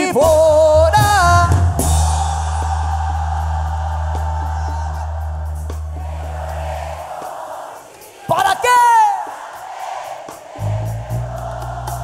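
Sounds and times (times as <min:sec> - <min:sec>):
crowd noise: 0:01.7 - 0:12.0.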